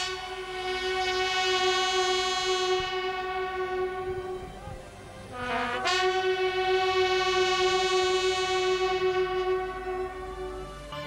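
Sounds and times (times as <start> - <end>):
bugles holding a long note: 0.0 - 11.0.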